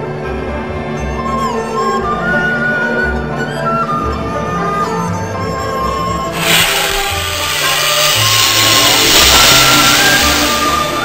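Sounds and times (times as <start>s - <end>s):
background music: 0.0s - 11.0s
fog machine hissing: 6.3s - 11.0s.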